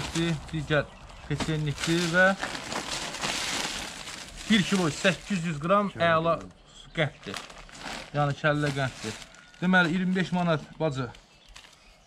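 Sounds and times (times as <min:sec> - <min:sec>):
plastic bag rustling and crinkling: 0:00.0 - 0:06.5, 0:07.2 - 0:12.0.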